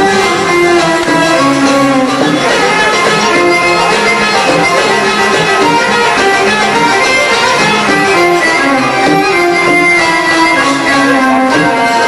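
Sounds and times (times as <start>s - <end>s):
bowed strings: 0.0s - 12.0s
plucked strings: 0.0s - 12.0s.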